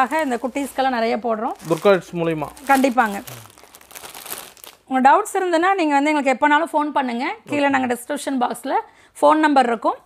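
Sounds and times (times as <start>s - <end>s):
woman's voice: 0.0s - 1.6s, 4.9s - 10.0s
plastic packaging crinkling: 0.0s - 4.9s.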